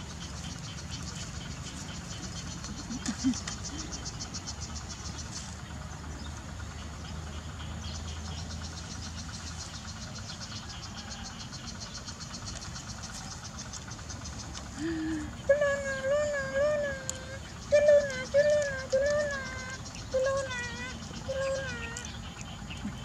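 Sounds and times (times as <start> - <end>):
insects chirring: 0.0 - 23.0
low hum: 0.0 - 23.0
baby monkey crying: 14.8 - 22.2.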